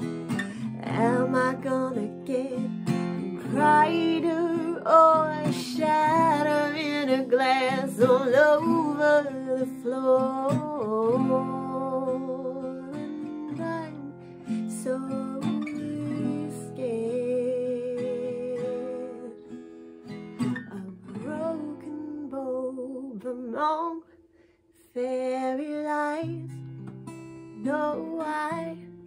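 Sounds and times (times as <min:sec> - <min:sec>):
woman singing: 0:00.0 - 0:19.6, 0:20.4 - 0:26.8, 0:27.5 - 0:29.0
acoustic guitar strumming: 0:00.0 - 0:22.3.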